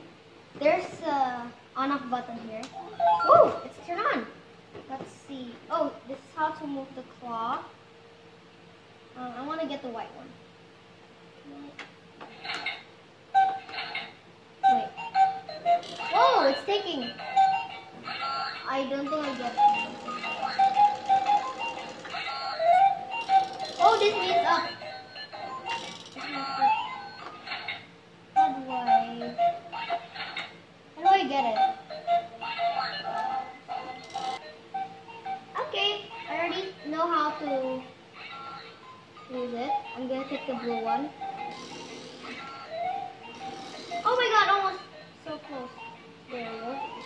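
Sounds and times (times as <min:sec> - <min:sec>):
toy claw machine electronic jingle: 0:13.4 - 0:30.5, 0:31.6 - 0:35.5, 0:36.1 - 0:47.0.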